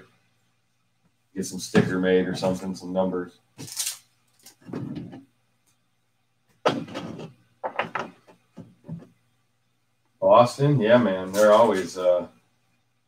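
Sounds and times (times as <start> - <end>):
card packs rustling: 3.6 - 4.7, 11.2 - 12.0
cards knocking on tabletop: 6.6 - 9.2.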